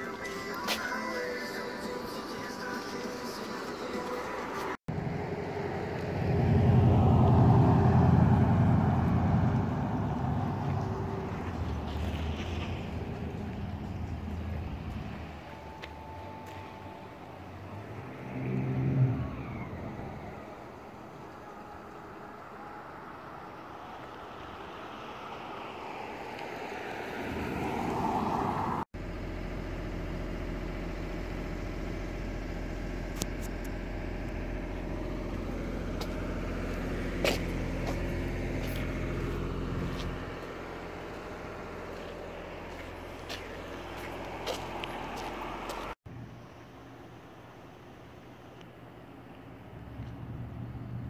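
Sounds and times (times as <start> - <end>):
car passing: 3.3 - 28.9, 34.7 - 46.0.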